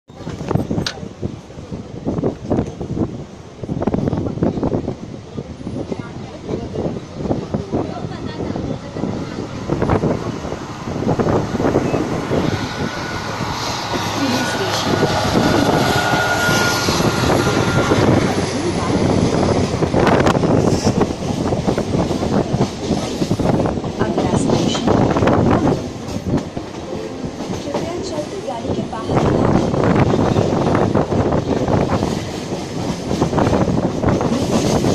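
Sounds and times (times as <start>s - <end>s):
passing train coaches: 0.1s - 34.9s
train rumble: 0.1s - 34.9s
wind rush: 0.1s - 34.9s.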